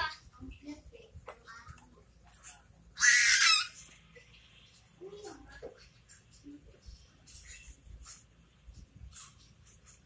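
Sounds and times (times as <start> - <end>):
baby squealing: 3.0 - 3.8.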